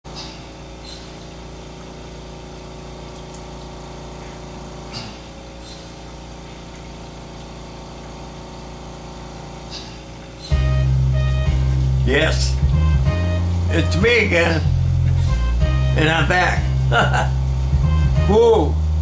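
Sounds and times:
room and equipment hum: 0.0s - 19.0s
steady tones: 10.5s - 19.0s.

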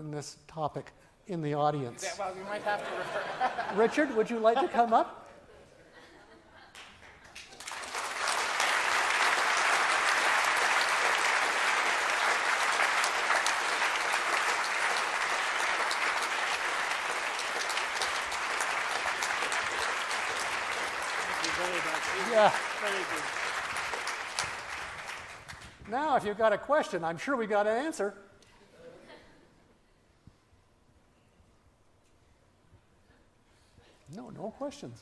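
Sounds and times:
audience applauding: 6.7s - 26.2s
man saying yeah: 21.3s - 23.3s.

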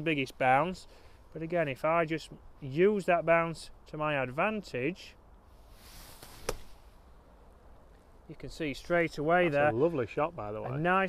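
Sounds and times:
golf club striking wet sand: 6.2s - 6.8s.

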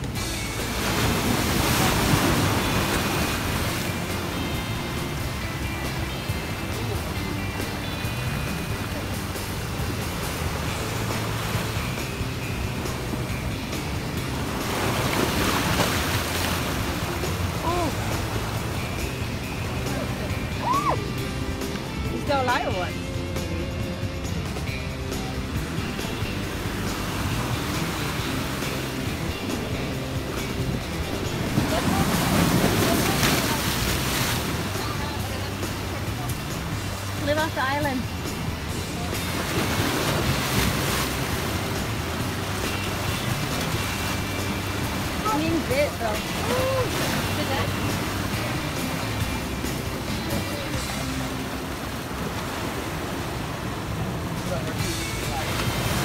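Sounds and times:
surf breaking against rocks: 0.0s - 20.9s, 25.4s - 56.0s
background music: 0.0s - 56.0s.

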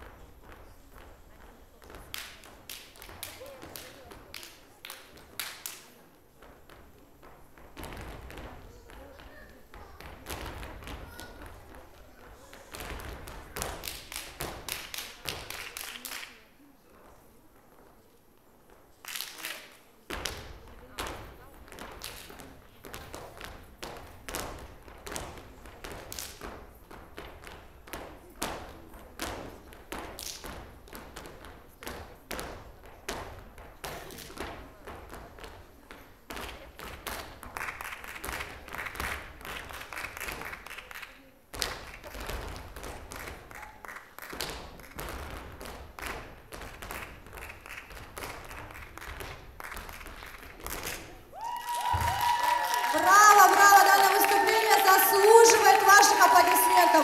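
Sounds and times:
flamenco-style dance music: 6.4s - 15.9s, 20.1s - 57.0s
hand claps: 12.5s - 16.4s, 36.3s - 57.0s.

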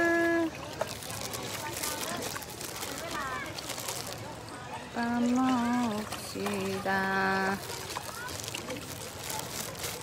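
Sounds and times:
fish splashing at surface: 0.0s - 10.0s
stream water over rocks: 0.0s - 10.0s.

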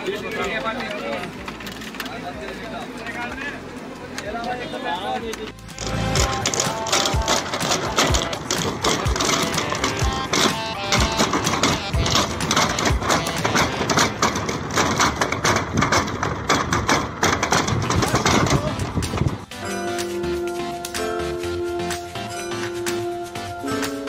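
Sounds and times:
plastic pipes clattering: 0.0s - 19.5s
background music: 4.9s - 14.6s, 17.9s - 24.0s.

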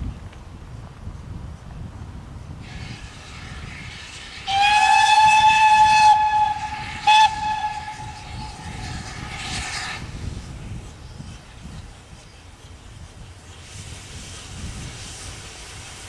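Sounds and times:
train rumble: 0.0s - 16.0s
steam hiss: 2.4s - 16.0s
steam locomotive whistle: 2.6s - 10.0s.

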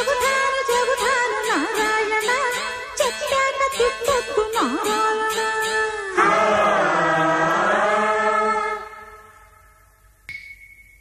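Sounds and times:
choir holding a sustained chord: 6.1s - 9.4s.

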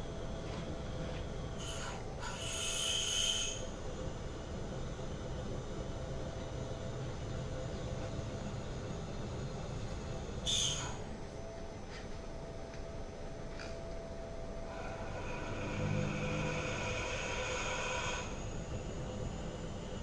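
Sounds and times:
steady machine hum: 0.0s - 20.0s
drill cutting metal with high whine: 1.6s - 3.8s, 10.4s - 11.0s, 14.7s - 20.0s.

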